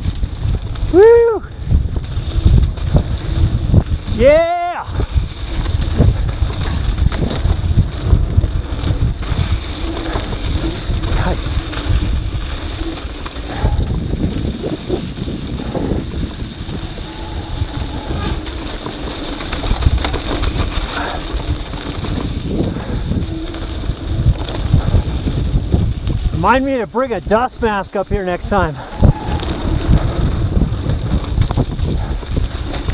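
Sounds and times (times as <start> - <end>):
bike rattling: 0.0 - 32.9
bike tyres rolling on dirt: 0.0 - 32.9
wind buffeting microphone: 0.0 - 32.9.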